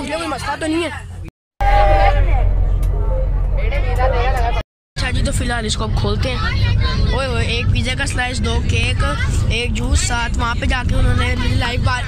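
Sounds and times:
bus engine rumble: 0.0 - 12.0
passengers' voices: 1.7 - 12.0.

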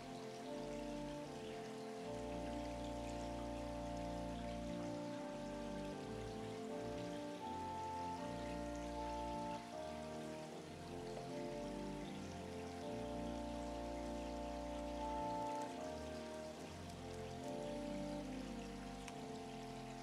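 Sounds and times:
organ playing soft chords: 0.0 - 20.0.

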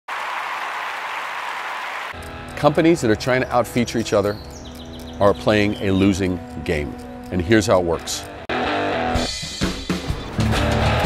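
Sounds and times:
applause: 0.1 - 2.2.

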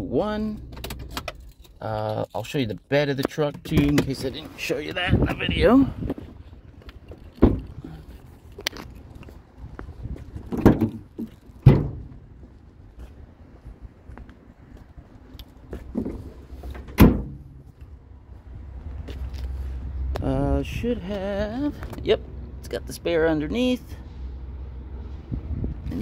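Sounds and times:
pickup truck door thumps: 10.5 - 12.2, 16.8 - 17.6
low rumble: 24.0 - 26.0.

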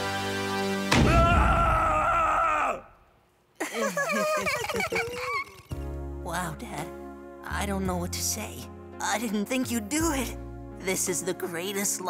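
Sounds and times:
music: 0.0 - 1.5, 4.6 - 12.0.

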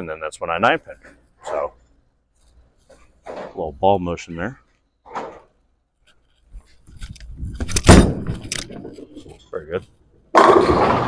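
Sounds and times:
bowling ball thud on lane: 10.4 - 11.0.

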